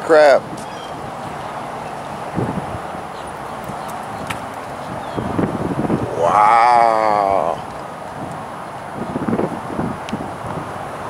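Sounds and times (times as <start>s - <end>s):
man's low wordless vocal: 5.8s - 7.7s.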